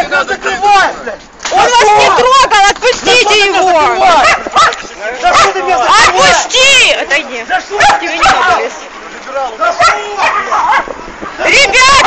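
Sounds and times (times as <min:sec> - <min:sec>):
voices nearby: 0:00.0 - 0:12.0
woman shouting: 0:01.6 - 0:04.4, 0:05.4 - 0:07.1, 0:11.4 - 0:12.0.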